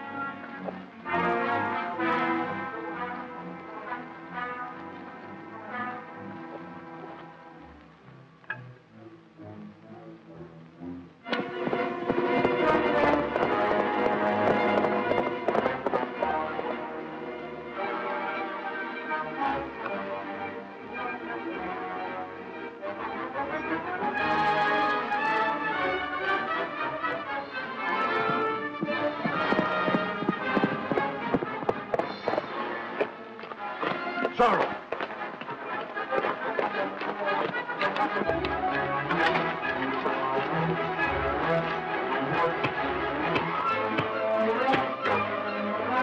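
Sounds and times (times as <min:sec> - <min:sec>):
dramatic orchestral music: 0:00.0 - 0:46.0.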